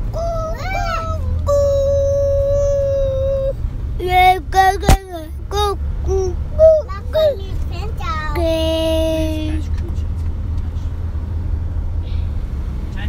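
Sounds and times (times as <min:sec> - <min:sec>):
child vocal sounds: 0:00.0 - 0:09.6
car cabin rumble: 0:00.0 - 0:13.0.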